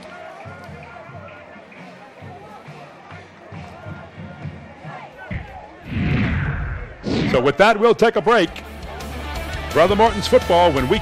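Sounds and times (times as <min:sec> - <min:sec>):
crowd noise: 0:00.0 - 0:11.0
low thuds: 0:05.2 - 0:07.6
loud whoosh: 0:05.3 - 0:07.6.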